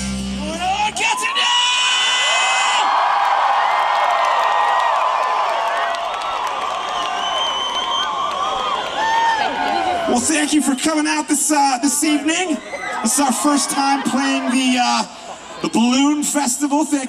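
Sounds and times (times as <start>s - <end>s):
crowd cheering and screaming: 0.6s - 17.0s.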